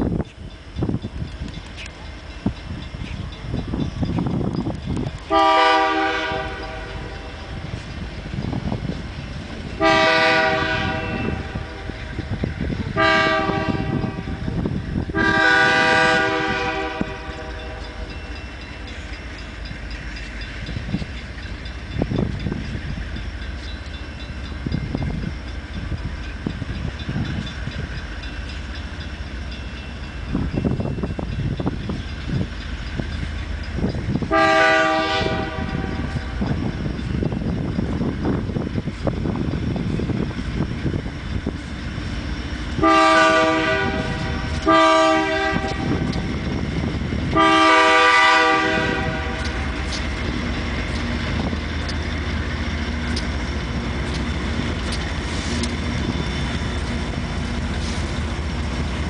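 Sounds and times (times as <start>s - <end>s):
diesel locomotive rumble: 0.0s - 59.0s
train running noise: 0.0s - 59.0s
locomotive air horn blasts: 5.3s - 7.2s, 9.8s - 11.9s, 12.9s - 14.4s, 15.1s - 18.0s, 34.3s - 36.1s, 42.8s - 46.1s, 47.3s - 50.0s.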